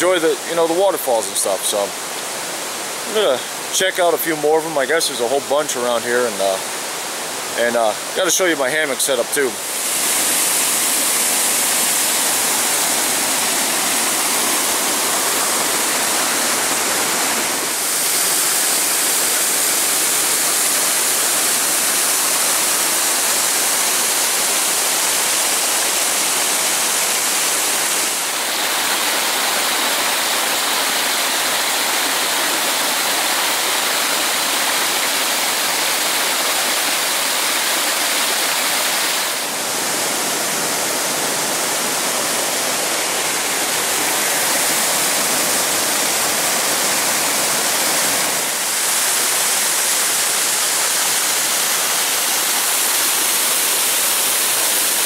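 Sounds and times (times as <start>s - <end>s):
water rushing over rock ledges: 0.0s - 55.0s.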